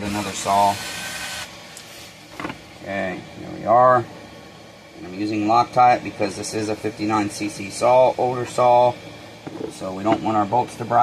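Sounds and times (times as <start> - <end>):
short hiss with faint whine: 0.0 - 2.4.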